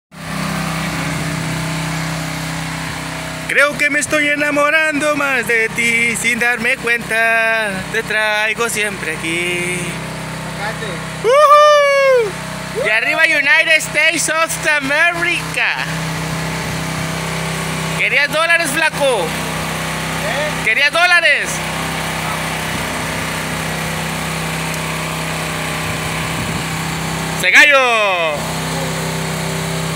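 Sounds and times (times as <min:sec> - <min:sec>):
engine running steadily: 0:00.2 - 0:29.9.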